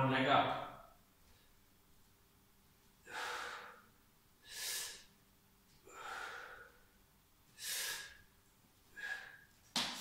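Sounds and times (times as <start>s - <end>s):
man breathing hard: 3.0s - 5.1s, 5.8s - 6.9s, 7.5s - 8.3s, 8.9s - 9.6s.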